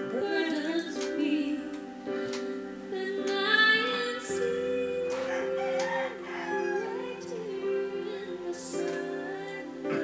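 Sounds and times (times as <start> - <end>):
soft backing accompaniment: 0.0 - 10.0.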